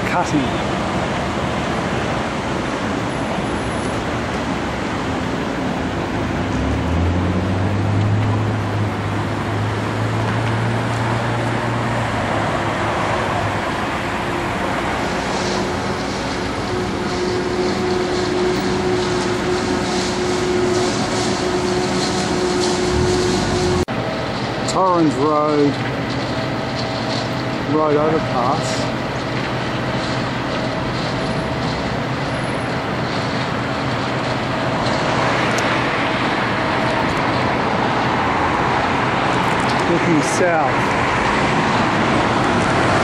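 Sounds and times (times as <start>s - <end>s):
heavy vehicle engine drone: 0.0s - 43.0s
road traffic passing: 0.0s - 43.0s.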